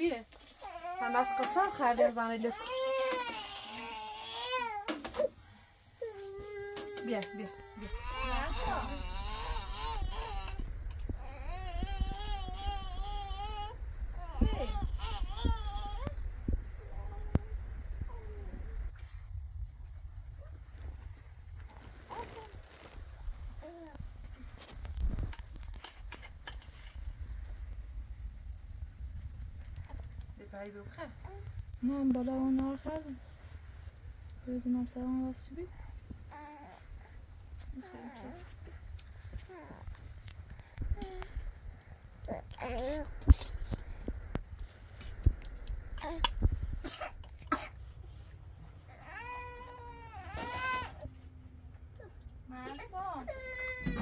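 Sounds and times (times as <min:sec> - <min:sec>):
low rumble: 0:06.4 - 0:50.2
baby coughing: 0:46.8 - 0:47.8.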